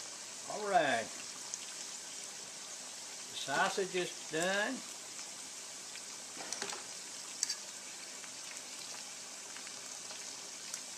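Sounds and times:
food deep-frying in oil: 0.0s - 10.9s.

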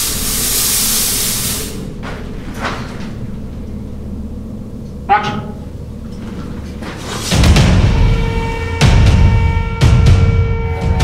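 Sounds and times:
smoke machine hissing: 0.0s - 2.0s.

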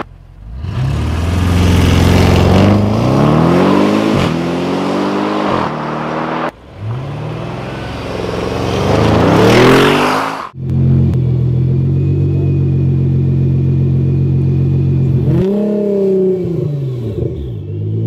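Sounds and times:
car engine idling and revving: 0.0s - 18.0s.

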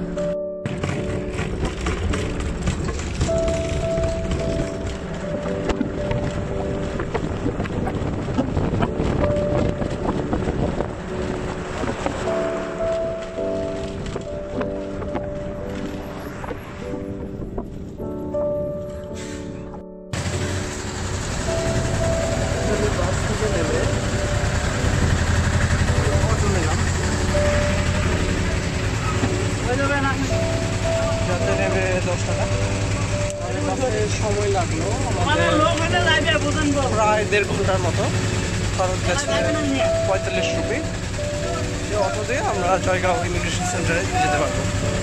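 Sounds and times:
road and engine noise: 0.0s - 45.0s
wind buffeting microphone: 1.0s - 19.1s.

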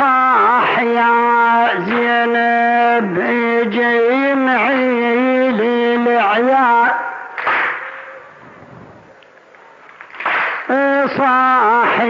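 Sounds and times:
people beating chests in unison: 7.3s - 8.5s, 10.0s - 12.0s.

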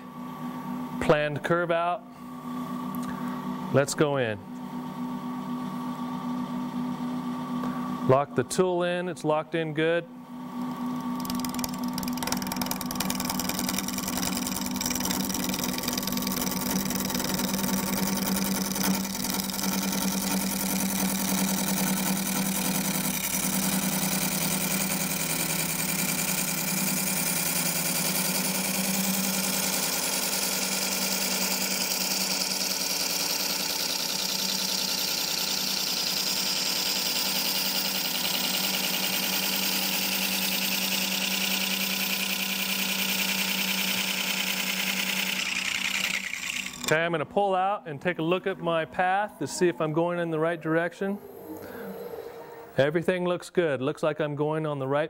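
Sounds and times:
wood lathe humming: 10.5s - 47.0s.

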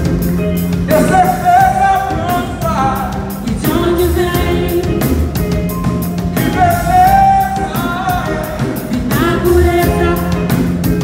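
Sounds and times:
soul band playing: 0.0s - 11.0s.

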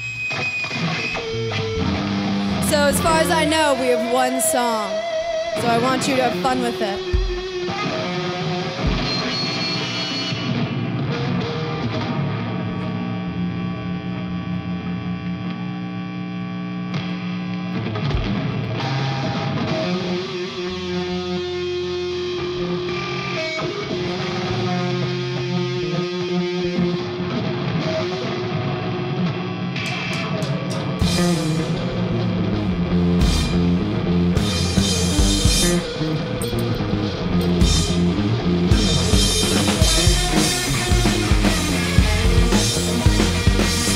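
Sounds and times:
electric bass: 0.0s - 3.7s, 7.0s - 27.8s, 30.8s - 43.9s
distorted electric guitars: 0.0s - 43.9s.

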